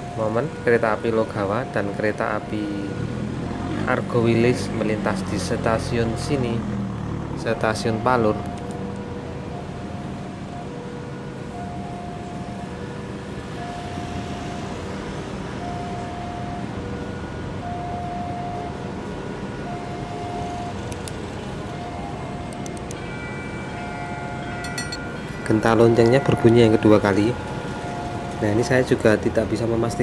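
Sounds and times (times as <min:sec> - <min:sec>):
higher ringing with clicks: 0:24.5 - 0:27.1.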